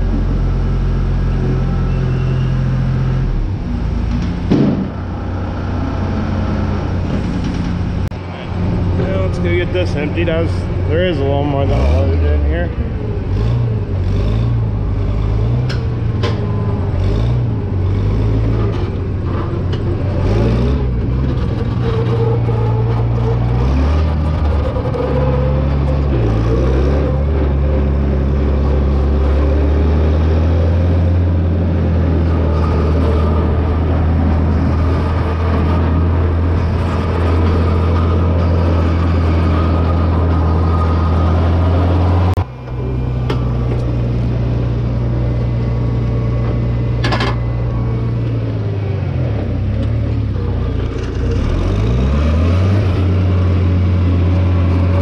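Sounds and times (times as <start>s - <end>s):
tractor engine running: 0.0s - 55.0s
clanks and rattles: 6.9s - 8.2s, 15.3s - 29.6s, 46.4s - 48.4s.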